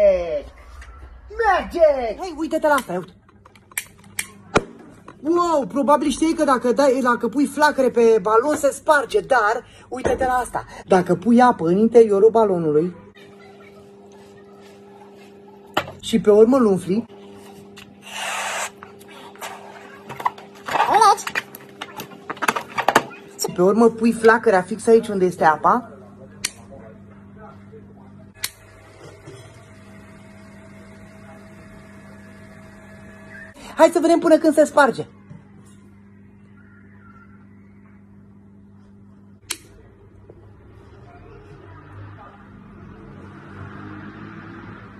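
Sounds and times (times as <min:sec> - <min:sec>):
rising and falling pitched sound: 0:00.0 - 0:03.3
rubber balloon squeaking: 0:18.0 - 0:18.8
sharp click: 0:39.4 - 0:39.8.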